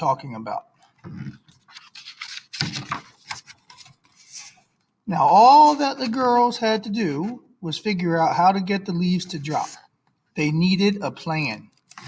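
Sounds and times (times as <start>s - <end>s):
book page turning: 1.1s - 4.8s, 11.8s - 12.0s.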